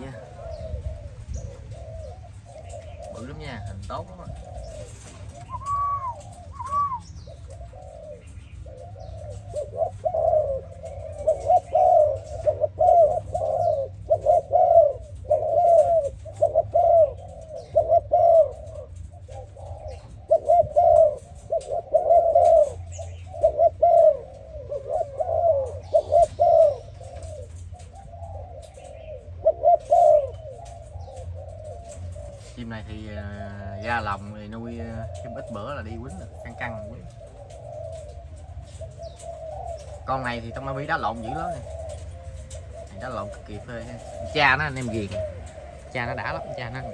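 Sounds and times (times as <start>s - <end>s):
dove cooing: 0.0s - 46.9s.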